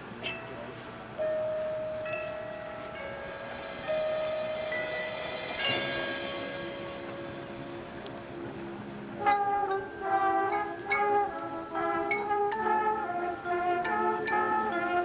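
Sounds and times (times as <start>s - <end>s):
horn line sustained chords: 0.0s - 15.0s
drum corps accented hits: 2.1s - 9.4s.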